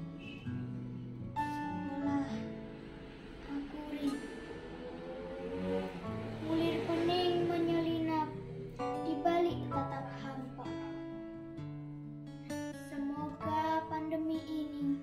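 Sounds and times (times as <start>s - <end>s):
instrumental accompaniment: 0.0s - 15.0s
child singing: 1.8s - 2.6s, 3.4s - 4.4s, 6.3s - 11.1s, 12.8s - 15.0s.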